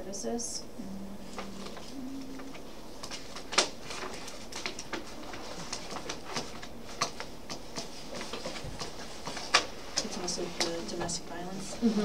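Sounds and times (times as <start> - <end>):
papers rustling: 1.3 - 12.0.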